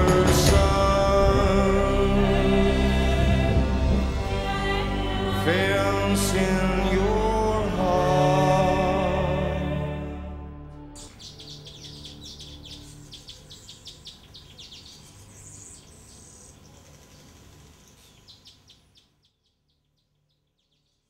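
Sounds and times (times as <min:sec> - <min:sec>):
small birds chirping: 0:11.0 - 0:21.0.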